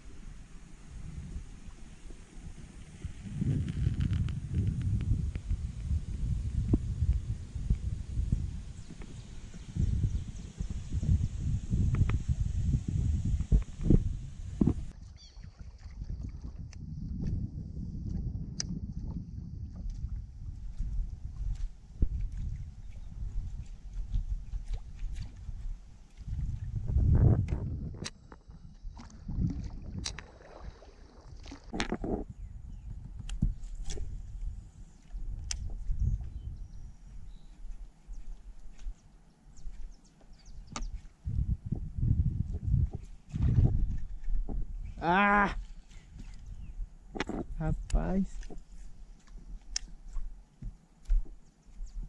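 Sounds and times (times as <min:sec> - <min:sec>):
paddle dipping through water: 0:13.3 - 0:47.6, 0:48.3 - 0:52.0.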